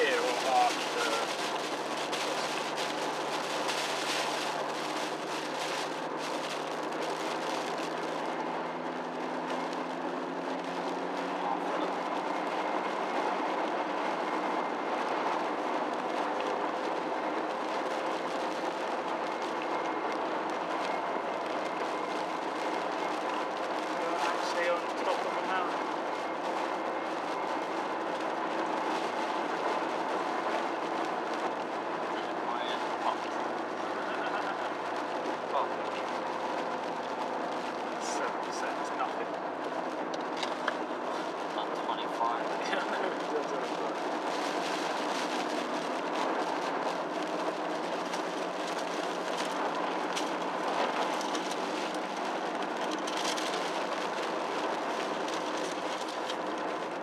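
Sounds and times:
diesel car engine running: 0:00.0 - 0:57.0
tyre and road noise: 0:00.0 - 0:57.0.

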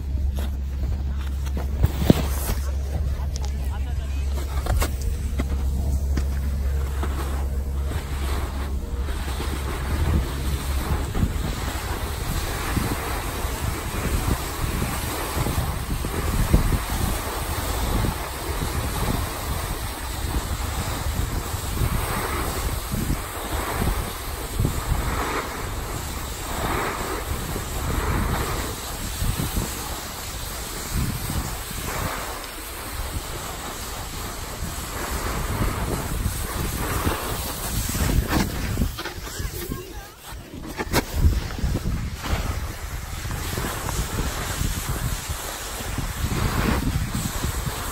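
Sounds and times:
snowboard edge scraping: 0:00.0 - 0:47.9
snowboard sliding on snow: 0:00.0 - 0:47.9
wind buffeting microphone: 0:00.0 - 0:47.9.

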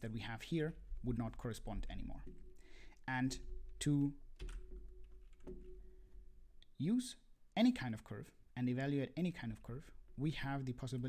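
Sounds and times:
computer keyboard clicks: 0:04.4 - 0:05.8.

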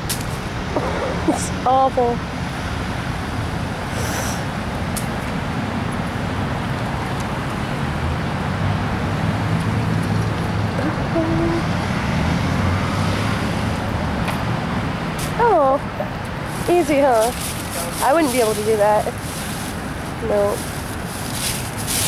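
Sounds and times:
vehicle engine passing: 0:00.0 - 0:04.9, 0:07.4 - 0:22.0
road traffic hiss: 0:00.0 - 0:22.0.

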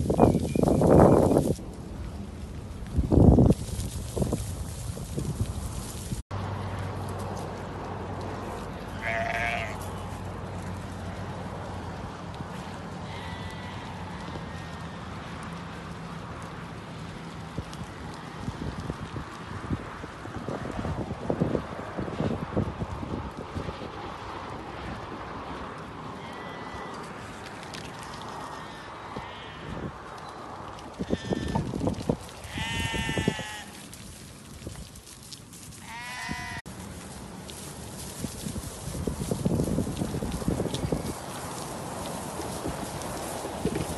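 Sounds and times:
sheep bleating: 0:08.9 - 0:10.1, 0:13.1 - 0:14.8, 0:26.2 - 0:27.1, 0:31.0 - 0:31.7, 0:32.4 - 0:33.8, 0:35.8 - 0:36.6.

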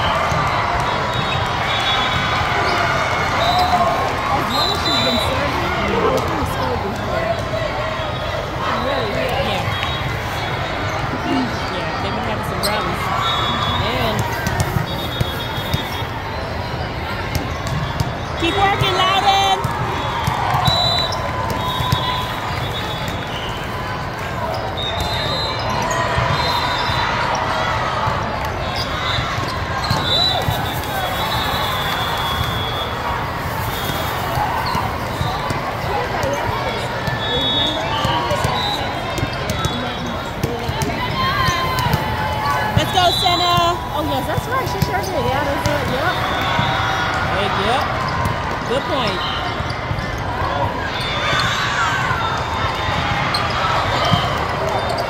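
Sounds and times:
hubbub of voices: 0:00.0 - 0:55.0
volleyballs hit and bouncing: 0:13.8 - 0:55.0
high squeaks or whistle tones: 0:28.7 - 0:35.4.

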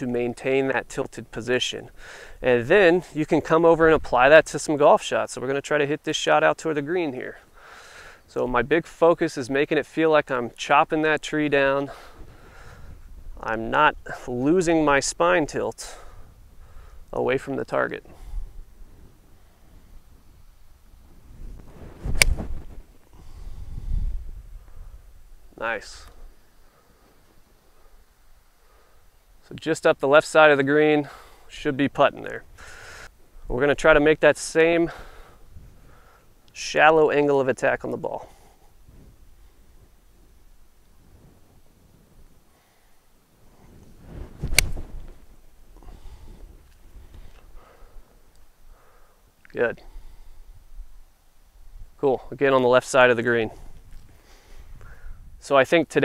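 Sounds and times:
golf club swish: 0:21.5 - 0:22.9, 0:43.6 - 0:45.3
golf club striking ball: 0:44.5 - 0:44.8.

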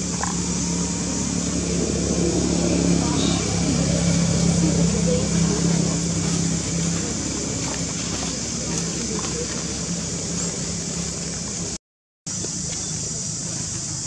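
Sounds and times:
people's voices: 0:00.0 - 0:11.7
steady low hum: 0:00.0 - 0:14.0.

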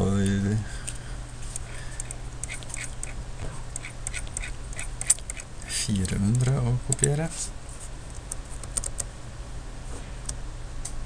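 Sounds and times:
low steady hum: 0:00.0 - 0:11.0
keyboard and mouse clicking: 0:08.3 - 0:09.1.

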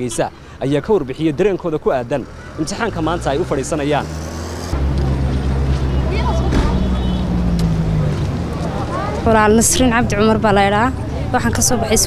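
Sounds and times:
road traffic: 0:00.0 - 0:12.0
vehicle engine humming: 0:00.0 - 0:12.0
faint voices: 0:04.8 - 0:12.0.

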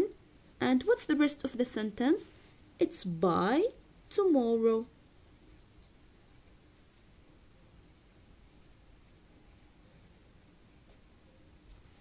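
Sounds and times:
pen scratching on paper: 0:05.4 - 0:07.1, 0:07.8 - 0:11.0.

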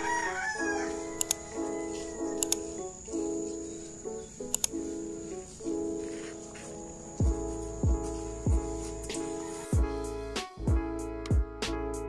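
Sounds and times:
rooster crowing: 0:00.0 - 0:02.4
background music with beat: 0:05.6 - 0:12.0.

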